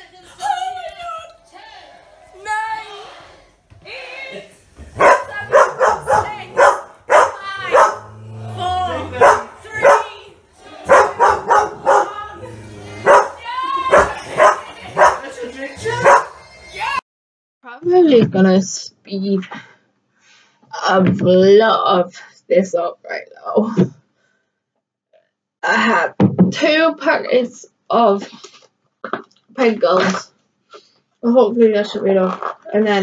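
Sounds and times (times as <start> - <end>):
tv music and voices: 0.0 - 17.0
dog barking loudly: 5.0 - 8.2, 9.1 - 10.2, 10.8 - 12.2, 13.0 - 15.2, 16.0 - 16.4.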